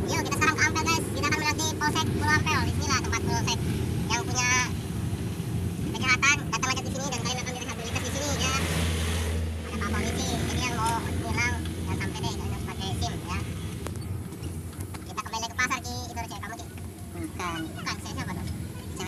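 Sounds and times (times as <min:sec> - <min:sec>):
engine and road rumble: 0:00.0 - 0:19.0.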